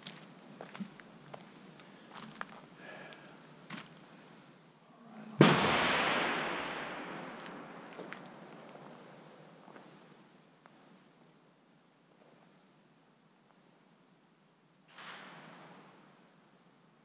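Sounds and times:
rifle shot echoing: 5.4 - 8.6.

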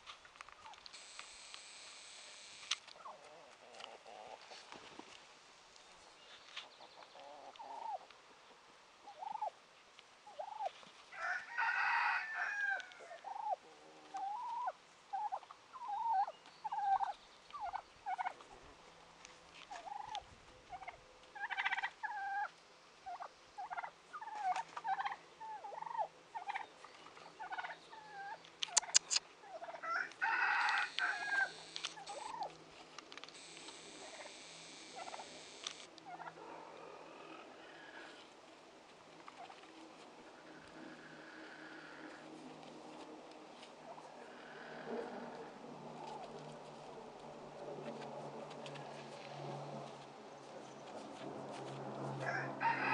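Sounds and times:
poultry clucking: 3.0 - 4.6, 6.7 - 8.1, 9.1 - 9.5, 10.3 - 18.6, 19.7 - 32.5, 33.4 - 36.5
poultry gobbling or crowing: 7.1 - 8.1, 9.0 - 9.5, 10.3 - 18.4, 19.7 - 26.7, 27.4 - 32.5, 33.4 - 38.2, 52.2 - 52.9.

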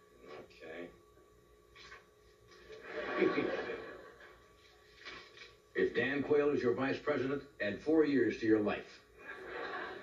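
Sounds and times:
studio audience laughing: 2.6 - 4.5, 9.2 - 10.0.

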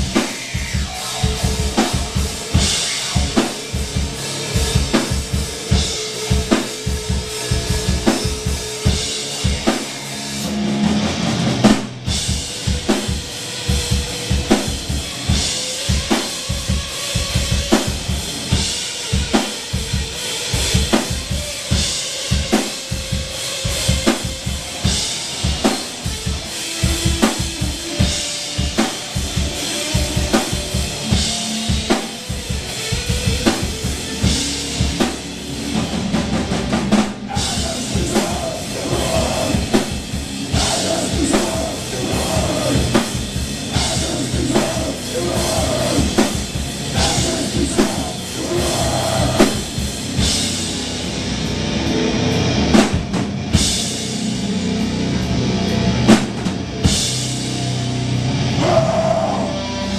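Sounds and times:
rock band playing: 0.0 - 59.9
rapid bass drum hits: 35.8 - 50.7.

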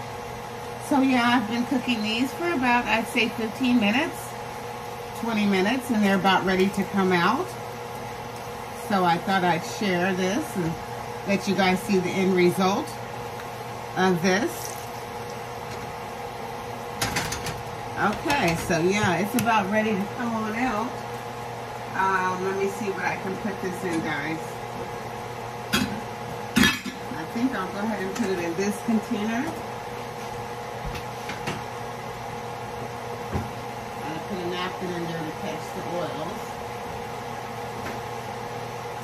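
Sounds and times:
steady kitchen hum: 0.0 - 39.0.

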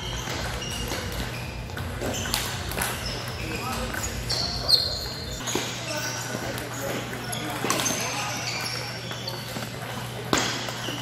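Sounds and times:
short high squeaks: 0.0 - 9.6.

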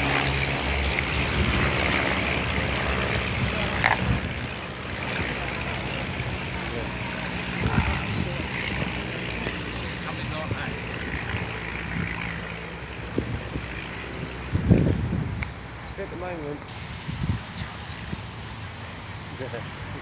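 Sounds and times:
distant biplane engine drone: 0.0 - 20.0
wind on microphone: 0.0 - 20.0.

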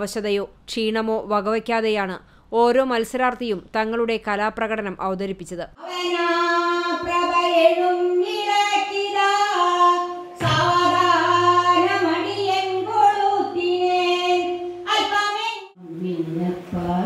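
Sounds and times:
elderly woman singing: 5.8 - 17.0.

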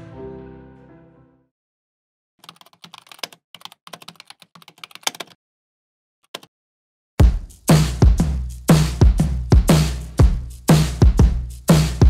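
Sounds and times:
keyboard key clicks: 2.4 - 5.4, 6.3 - 6.5.

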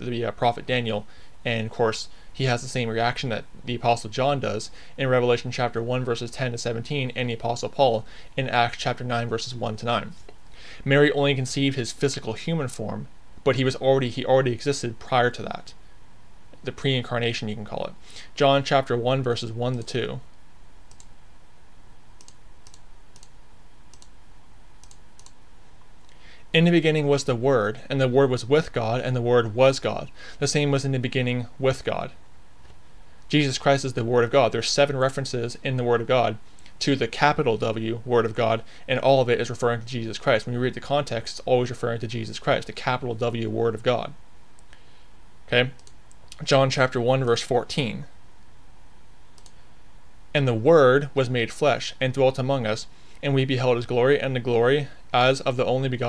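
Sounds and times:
low room hiss: 0.0 - 56.0
keyboard and mouse clicks: 20.9 - 21.1, 22.2 - 23.3, 23.9 - 24.1, 24.8 - 25.4.

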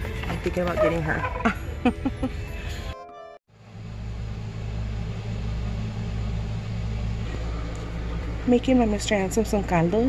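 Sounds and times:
store background music: 0.0 - 3.4
steady low hum with rumble: 3.6 - 10.0.

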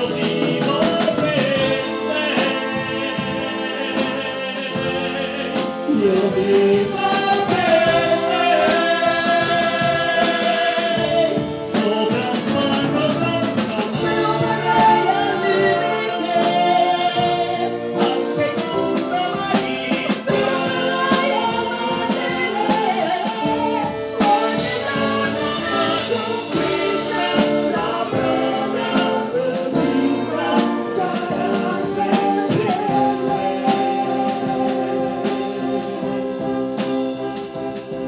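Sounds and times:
man and woman singing duet: 0.0 - 38.0
steady drum beat: 0.0 - 38.0
wind band accompaniment: 0.0 - 38.0.

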